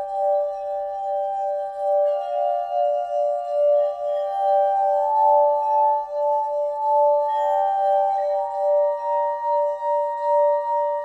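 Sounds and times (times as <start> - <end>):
crystal singing bowls ringing: 0.0 - 11.0.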